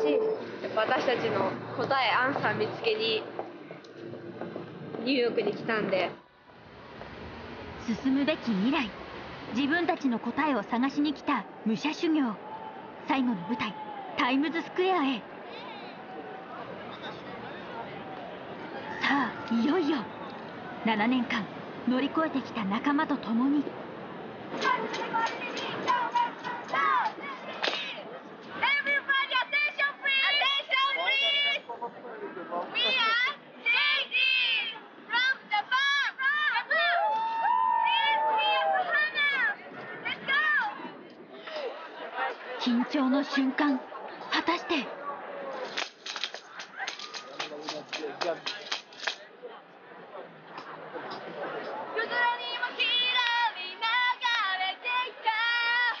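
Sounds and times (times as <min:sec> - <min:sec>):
busy street crowd noise: 0:00.0 - 0:56.0
girls shouting: 0:24.6 - 0:28.0, 0:28.6 - 0:31.6, 0:32.8 - 0:40.8.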